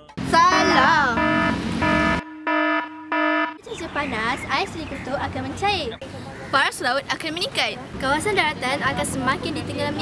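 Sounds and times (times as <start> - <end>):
wrong-answer buzzer: 1.0 - 3.6.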